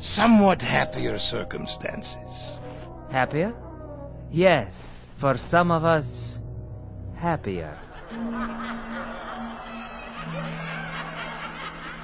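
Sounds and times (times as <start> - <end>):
snickering laughter: 7.8 - 12.0.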